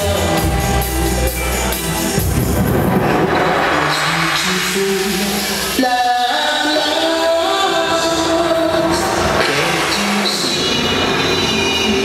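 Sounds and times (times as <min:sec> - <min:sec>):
loud dub reggae over speakers: 0:00.0 - 0:12.0.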